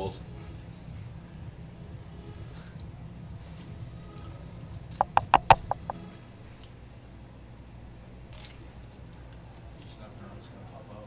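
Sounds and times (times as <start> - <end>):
rapid sharp knocks: 5.0 - 6.0.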